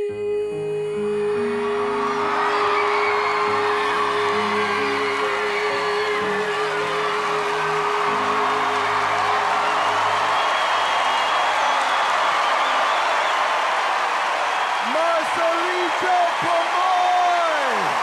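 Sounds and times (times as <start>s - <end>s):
singer holding long note: 0.0s - 11.0s
audience cheering and whooping: 1.4s - 18.0s.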